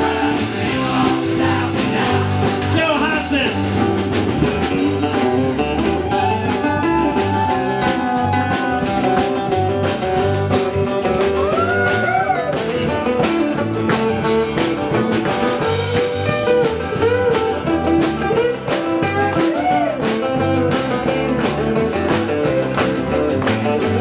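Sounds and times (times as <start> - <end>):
acoustic guitars strumming: 0.0 - 24.0
drums: 0.0 - 24.0
electric guitar: 0.0 - 24.0
lead guitar bent gliding notes: 0.0 - 24.0.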